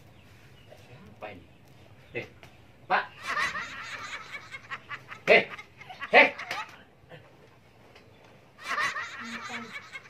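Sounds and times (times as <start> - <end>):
person laughing: 8.6 - 10.0.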